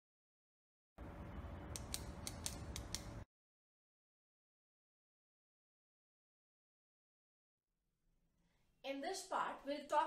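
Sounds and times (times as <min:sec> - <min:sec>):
faint steady hum: 0:01.0 - 0:03.2
sharp mechanical clicks: 0:01.7 - 0:03.2.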